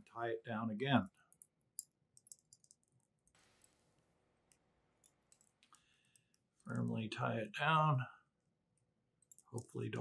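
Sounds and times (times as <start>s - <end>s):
thread ticking under tension: 1.2s - 3.4s.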